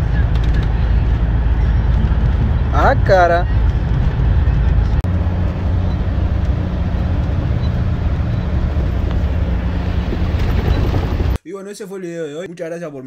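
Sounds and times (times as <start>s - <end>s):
bus engine and road drone: 0.0s - 11.4s.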